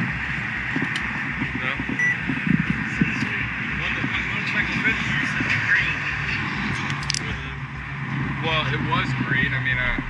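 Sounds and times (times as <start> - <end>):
wind rumble on microphone: 0.0 - 10.0
faint indistinct voices: 0.8 - 10.0.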